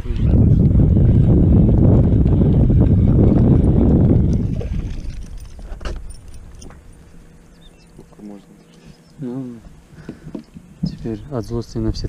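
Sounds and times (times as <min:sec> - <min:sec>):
loud low rumbling: 0:00.0 - 0:07.5.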